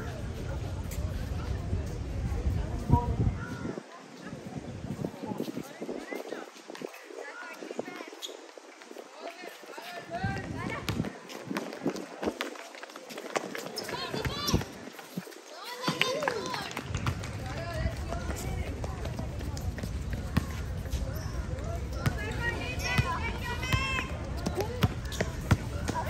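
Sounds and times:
running footsteps on court: 5.4s - 26.0s.

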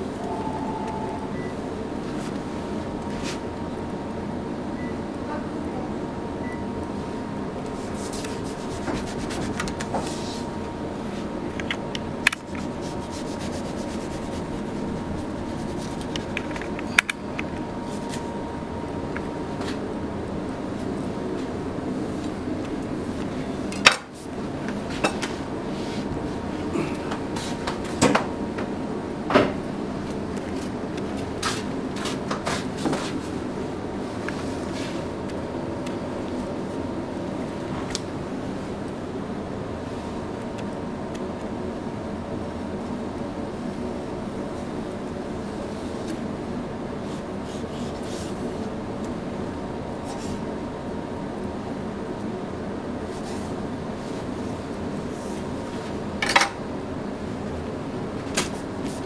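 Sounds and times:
room hum: 0.0s - 59.0s.

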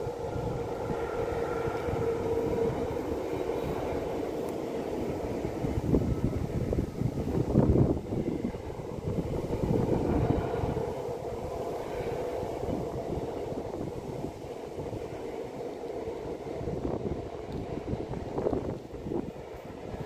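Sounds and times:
faint locomotive whine: 0.0s - 20.0s
train wheels rumbling on rail: 0.0s - 20.0s.

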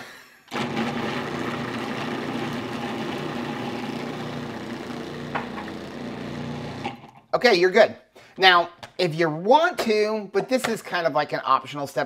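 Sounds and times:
food processor motor chopping: 0.5s - 7.2s.

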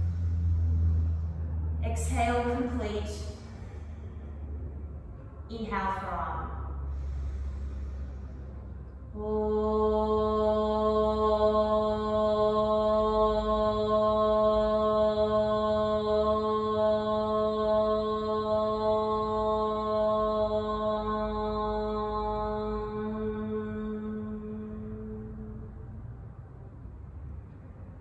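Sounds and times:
woman chanting om: 0.0s - 4.1s, 5.5s - 8.2s, 9.1s - 26.2s.

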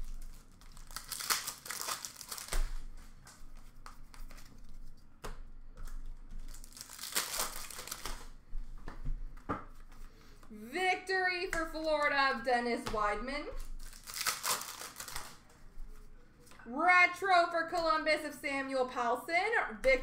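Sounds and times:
foil wrapper crinkling and tearing: 0.0s - 3.4s, 6.3s - 8.3s, 13.6s - 15.4s
cards clicking and rustling: 13.8s - 15.5s.

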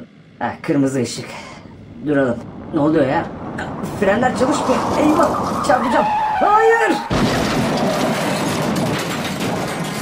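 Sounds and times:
clatter of car wreckage and debris: 6.9s - 10.0s.

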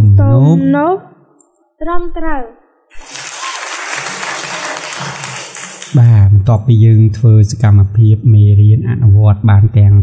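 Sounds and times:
recorded applause: 2.9s - 6.3s.

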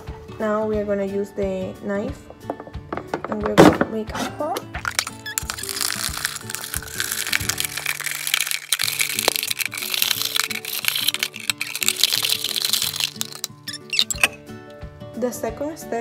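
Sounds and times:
background music: 0.0s - 16.0s
plastic bottle being cut with knife: 4.8s - 14.4s.

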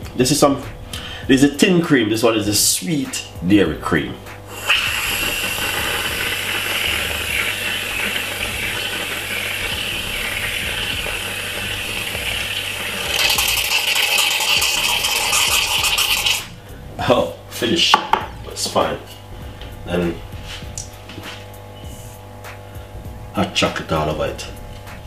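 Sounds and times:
aerosol whipped cream hissing: 4.5s - 16.5s.

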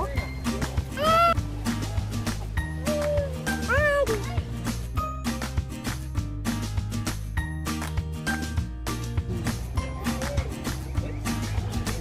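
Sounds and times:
music with a steady beat: 0.0s - 12.0s.

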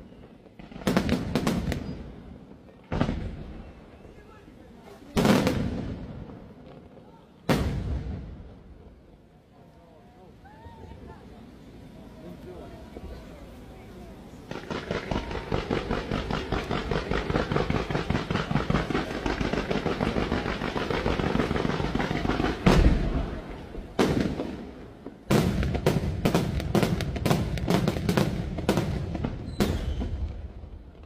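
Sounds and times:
fireworks crackling and popping: 0.0s - 9.7s, 10.3s - 31.0s
heavy firework boom: 7.5s - 8.9s, 14.4s - 24.6s.

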